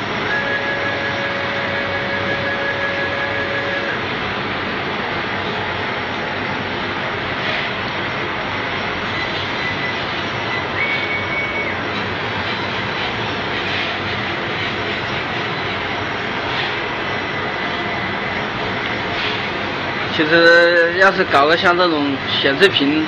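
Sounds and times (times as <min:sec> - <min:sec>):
laser cutting machine running: 0:00.0 - 0:23.0.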